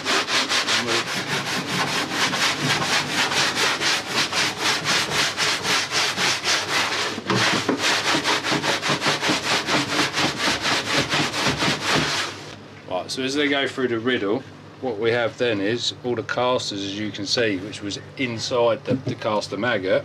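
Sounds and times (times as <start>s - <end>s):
sawdust rasping across metal mesh: 0.0s - 12.4s.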